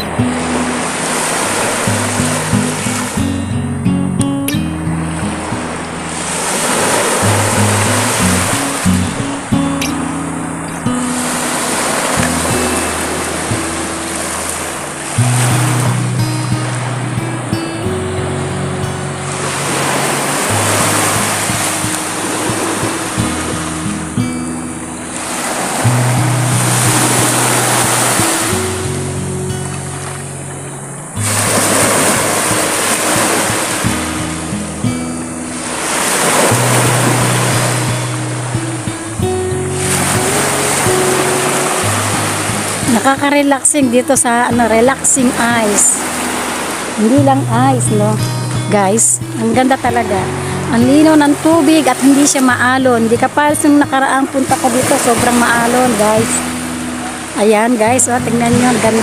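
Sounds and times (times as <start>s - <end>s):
waves washing on pebble shore: 0.0s - 3.3s, 5.0s - 47.2s, 48.6s - 59.0s.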